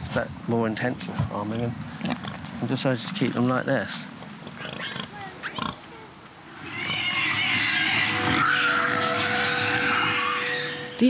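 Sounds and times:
pigs squealing: 0:04.4 - 0:11.0.

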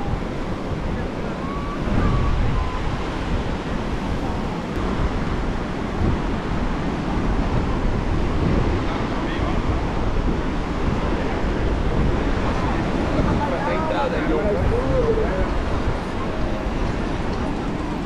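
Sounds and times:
faint voices: 0:00.0 - 0:04.8, 0:07.8 - 0:18.0
ocean surf washing onto beach: 0:00.0 - 0:18.0
wind buffeting microphone: 0:00.0 - 0:18.0.

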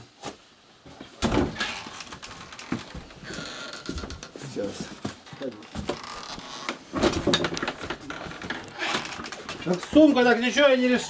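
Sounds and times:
rustling: 0:00.1 - 0:10.6.

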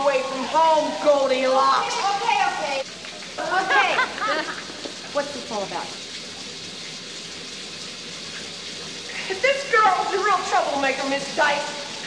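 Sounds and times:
shower water spray hissing: 0:00.0 - 0:12.0.

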